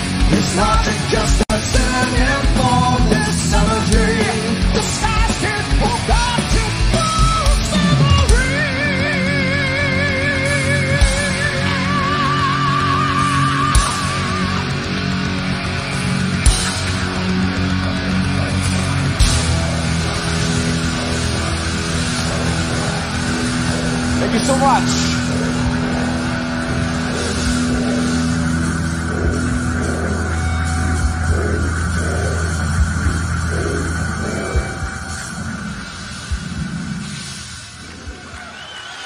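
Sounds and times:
distorted guitar and bass chord: 0:00.0 - 0:38.4
drum and cymbal hits: 0:00.0 - 0:38.4.

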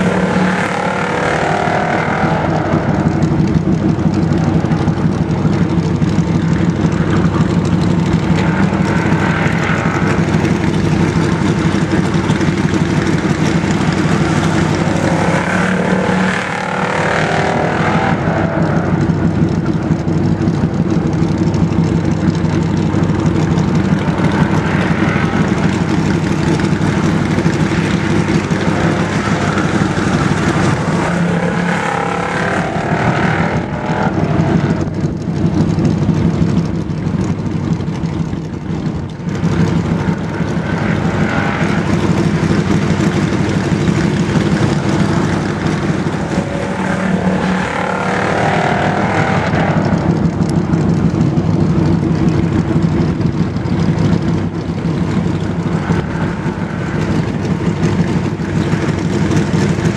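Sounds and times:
race car engine passing: 0:00.0 - 0:36.6, 0:39.3 - 0:51.2
low engine drone: 0:00.0 - 0:59.9.

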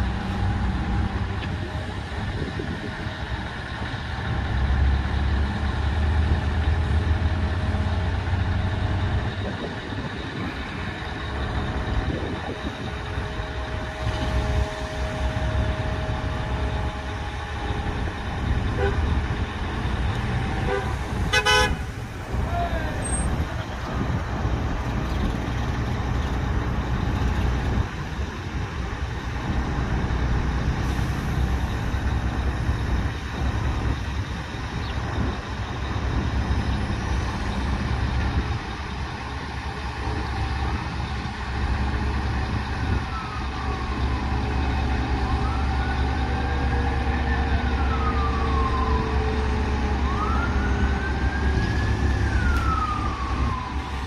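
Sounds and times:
diesel engine running: 0:00.0 - 0:54.0
horn toot: 0:20.6 - 0:21.9.

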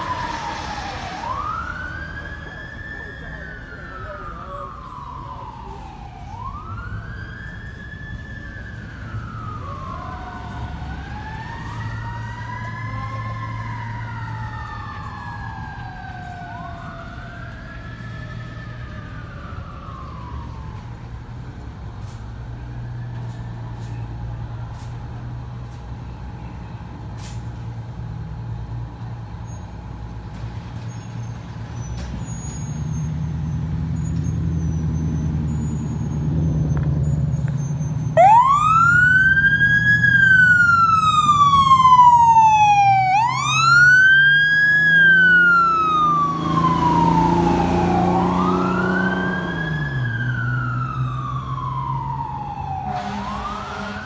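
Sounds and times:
siren wailing: 0:00.0 - 0:21.8, 0:38.1 - 0:54.0
air horn blast: 0:52.9 - 0:54.0.

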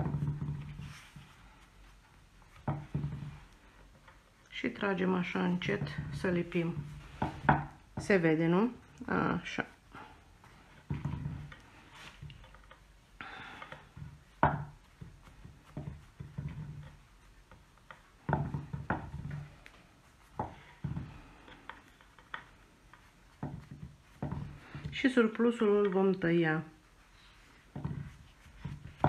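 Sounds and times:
hands rubbing fondant: 0:00.0 - 0:29.0.

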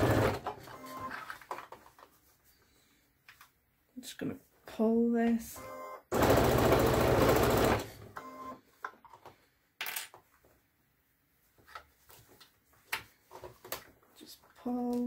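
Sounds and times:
sewing machine stitching: 0:00.0 - 0:01.1, 0:06.1 - 0:08.2.

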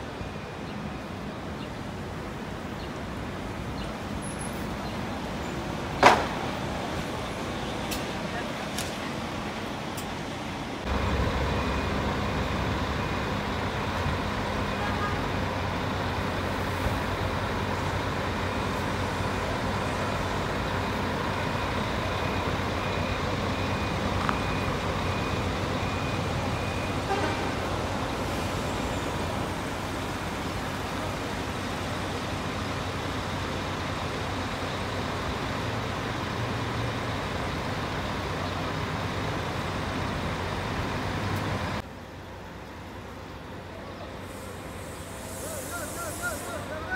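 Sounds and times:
diesel engines idling: 0:00.0 - 0:46.9
distant voices: 0:00.0 - 0:46.9
traffic noise: 0:00.0 - 0:46.9
faint repeating beep: 0:22.8 - 0:27.0.

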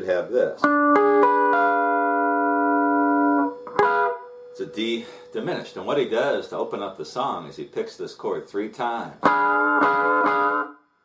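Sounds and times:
electric guitar chord ringing: 0:00.6 - 0:05.4, 0:09.2 - 0:10.8.

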